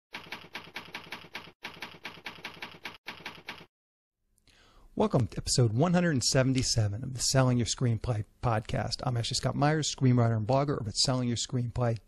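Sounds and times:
typewriter keys striking: 0.1 - 3.7.

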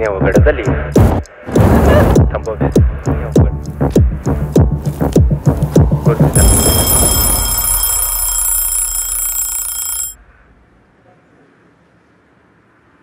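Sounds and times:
high-pitched electronic ringing: 6.4 - 10.2.

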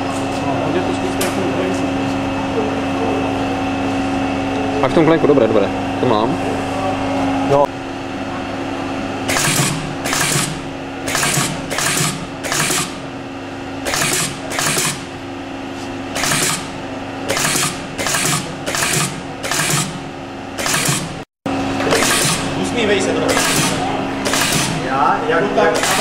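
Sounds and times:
machine hum: 0.0 - 26.0.

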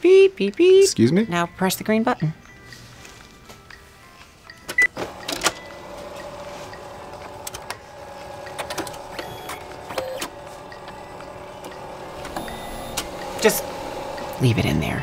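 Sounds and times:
printer whirring: 4.8 - 14.5.

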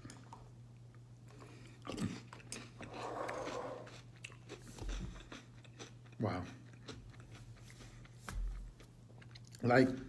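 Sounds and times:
man chewing cereal: 0.0 - 10.0.

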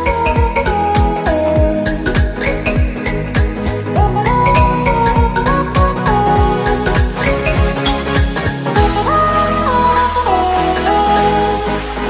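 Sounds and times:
electronic music with synth melody: 0.0 - 12.0.

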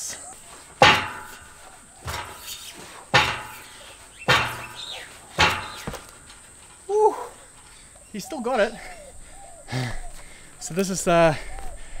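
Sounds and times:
steel rig clanking: 0.7 - 9.0.

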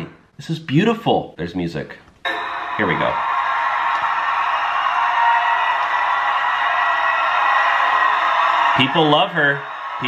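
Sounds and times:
crowd cheering and applauding: 2.3 - 10.0.

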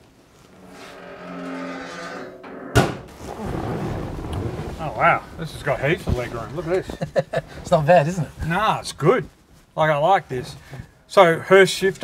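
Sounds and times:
hood hinges creaking: 0.0 - 4.5
steel hood slamming shut: 0.8 - 3.8
soft rustling: 3.1 - 11.0.

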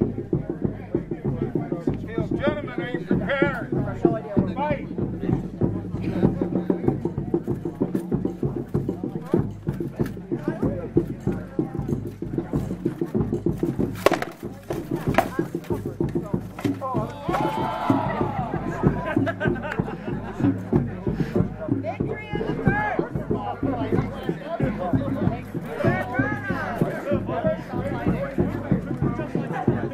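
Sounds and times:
onlookers' voices: 0.0 - 29.9
weapons striking shields: 13.9 - 15.5.

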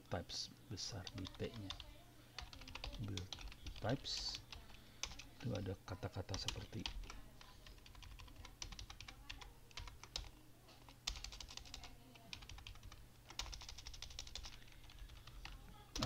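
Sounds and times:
faint keyboard typing: 1.0 - 16.0.

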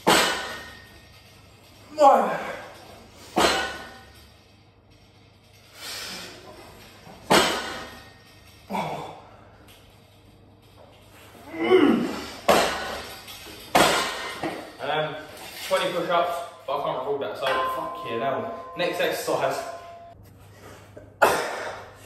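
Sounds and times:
weight stack clanking: 0.0 - 20.2
strained breaths: 2.2 - 14.4.

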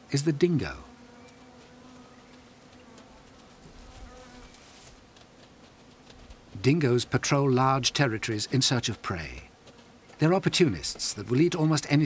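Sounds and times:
flying insects buzzing: 0.0 - 12.0.

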